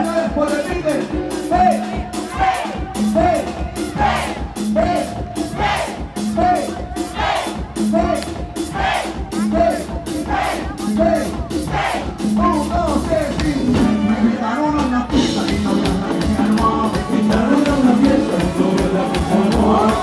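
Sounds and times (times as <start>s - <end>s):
live band playing dance music: 0.0s - 20.0s
crowd shouting along: 2.1s - 12.2s.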